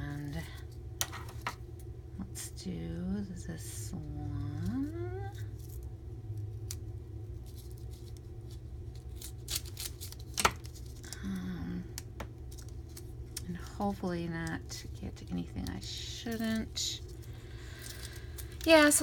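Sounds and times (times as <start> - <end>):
steady low hum: 0.0 - 19.0
scissors snipping wrapper: 9.0 - 11.2.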